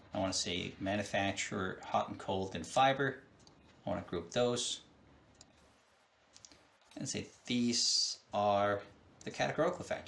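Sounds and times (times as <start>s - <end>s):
computer mouse clicks: 6.3s - 7.0s.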